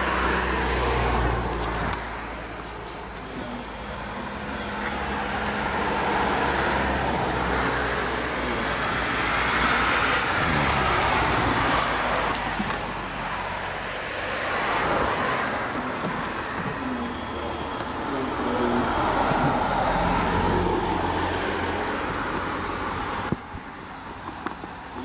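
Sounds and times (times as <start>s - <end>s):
road traffic passing: 0.0s - 25.0s.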